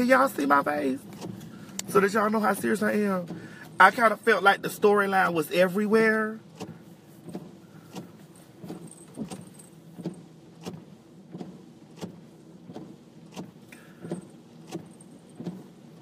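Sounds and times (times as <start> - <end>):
car blinker ticking: 0.0 - 16.0.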